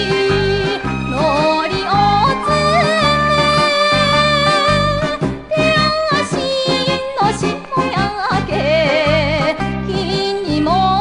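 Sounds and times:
female singer with wavering notes: 0.0 - 11.0.

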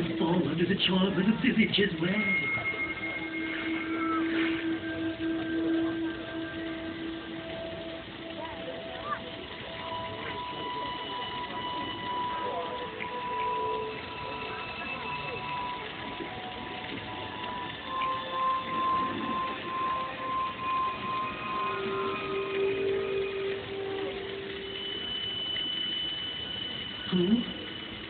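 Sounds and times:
murmur of audience voices: 0.0 - 26.1
long held musical tones: 0.0 - 28.0.

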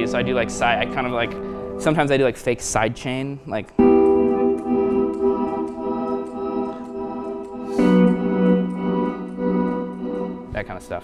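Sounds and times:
sustained electric guitar drone: 0.0 - 2.2, 3.8 - 11.0.

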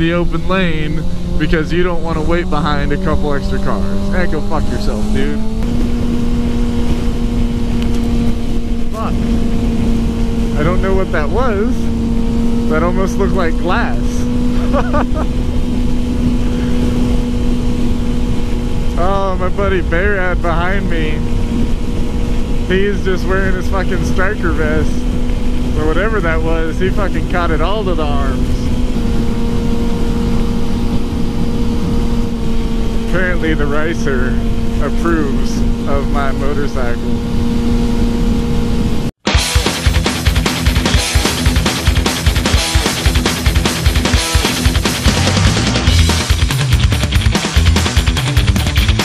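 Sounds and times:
wind noise on microphone: 0.0 - 12.6, 14.2 - 39.2
motorcycle engine cruising: 0.0 - 49.0.

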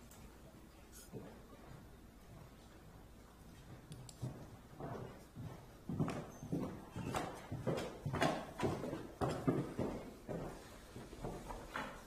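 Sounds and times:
footsteps walking: 0.0 - 12.0.

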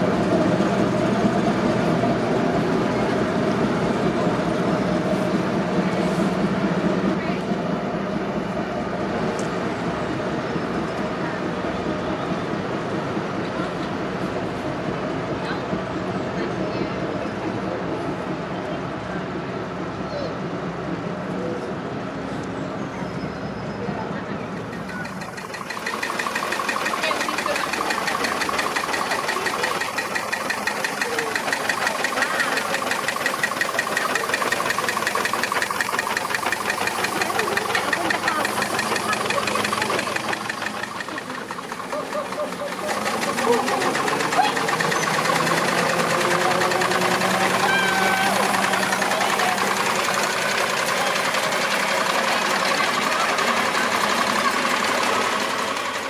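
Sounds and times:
steam engine running: 0.0 - 15.1, 24.4 - 56.0.

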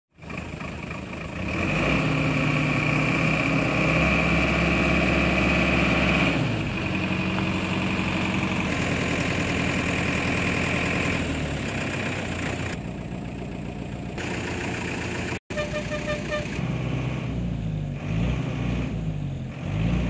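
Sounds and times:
diesel truck engine idling: 0.2 - 18.0.

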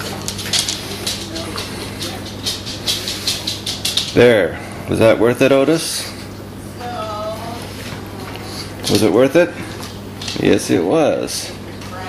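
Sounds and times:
dogs crunching treats: 0.0 - 5.8, 7.8 - 10.8
steady low hum: 0.0 - 12.0.

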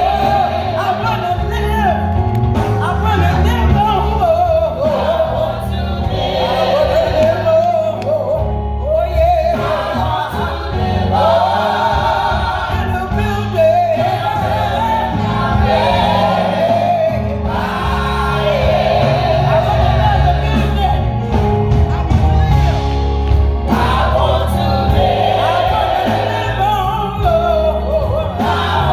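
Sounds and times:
women's vocal group singing gospel: 0.0 - 1.6, 2.8 - 21.2, 23.6 - 28.9
low instrumental accompaniment: 0.0 - 28.9.

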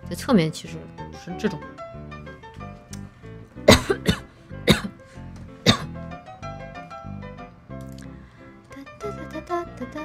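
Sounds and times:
background music: 0.0 - 10.0
woman coughing: 3.7 - 5.0, 5.6 - 6.0.

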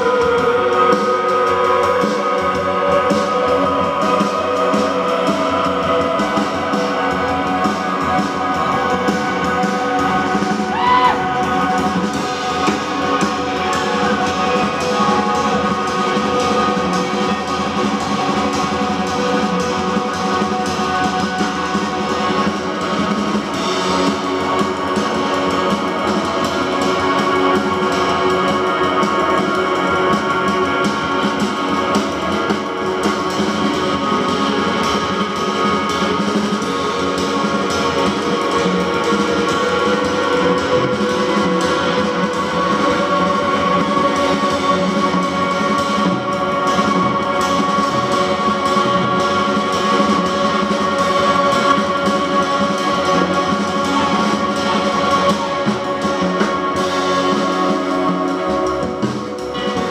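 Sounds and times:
drum kit: 0.0 - 59.9
electric guitars: 0.0 - 59.9
upright bass: 0.0 - 59.9.

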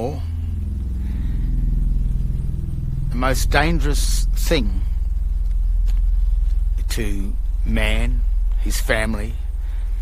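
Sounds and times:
pulsing low droning hum: 0.0 - 10.0.

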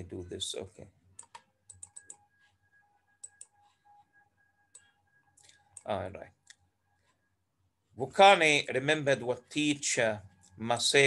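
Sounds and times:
faint steady whine: 0.0 - 11.0
computer mouse clicks: 1.2 - 2.2, 3.2 - 3.8.

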